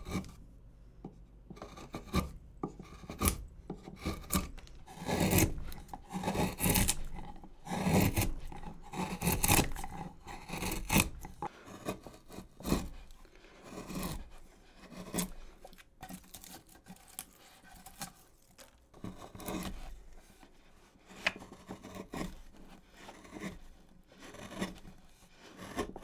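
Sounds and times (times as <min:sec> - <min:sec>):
wood gouge scraping wood: 0:00.0 - 0:00.4, 0:01.0 - 0:26.0.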